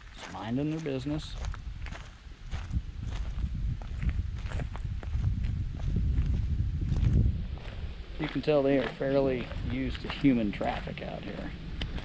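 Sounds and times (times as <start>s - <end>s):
footsteps crunching dry leaves: 0.0s - 12.0s
low rumble: 1.3s - 12.0s.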